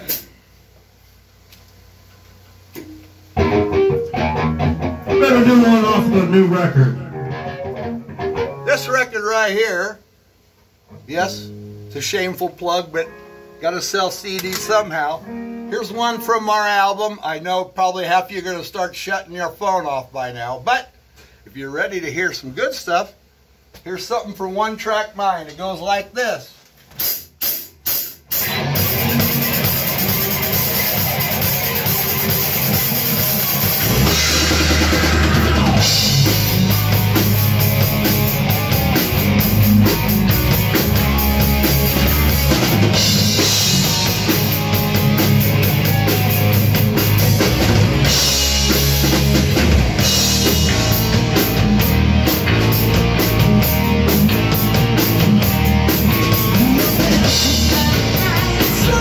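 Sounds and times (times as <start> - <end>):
drum kit: 0.0 - 0.4, 2.7 - 9.1, 26.9 - 59.0
electric guitars: 2.8 - 9.2, 28.3 - 59.0
bass guitar: 2.8 - 9.4, 10.8 - 13.6, 28.3 - 59.0.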